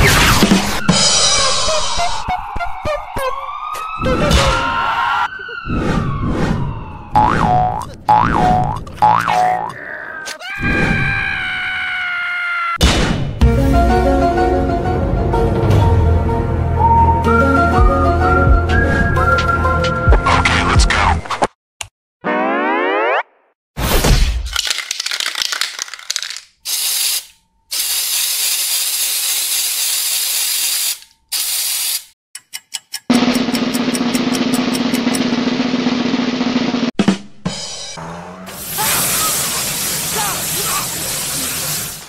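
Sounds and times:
cartoon boing glide: 7.1s - 10.2s, 22.2s - 23.5s
background music: 13.4s - 20.9s
spray-can hiss: 26.6s - 32.1s, 38.6s - 42.0s
rush of sprayed water: 38.6s - 42.0s.

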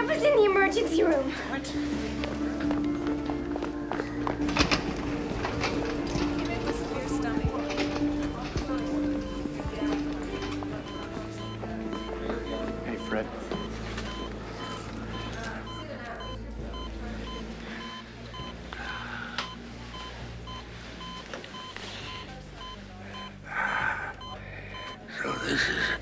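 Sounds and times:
patient monitor beeping: 2.0s - 26.0s.

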